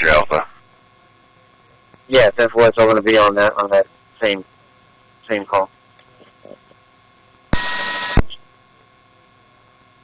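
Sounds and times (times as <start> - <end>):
radio static burst with beep tone: 7.5 - 8.5.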